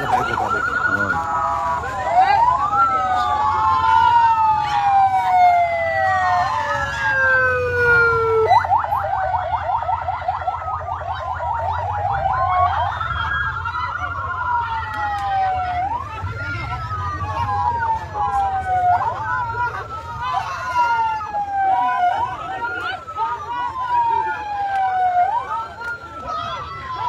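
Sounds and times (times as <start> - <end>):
ambulance sirens wailing and yelping: 0.0 - 27.0.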